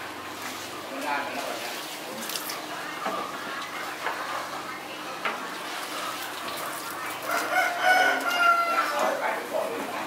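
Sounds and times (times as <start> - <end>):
rooster crowing: 7.2 - 9.2.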